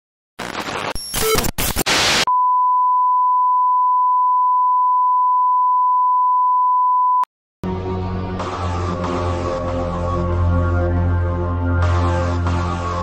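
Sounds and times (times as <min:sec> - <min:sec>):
stuttering glitch static: 0:00.4 - 0:02.3.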